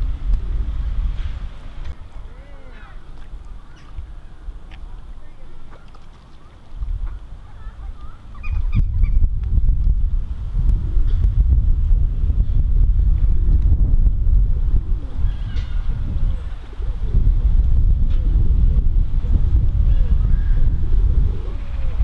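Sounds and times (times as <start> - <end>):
wind buffeting microphone: 0.0 - 5.8, 6.5 - 22.0
gull calls: 7.5 - 9.2.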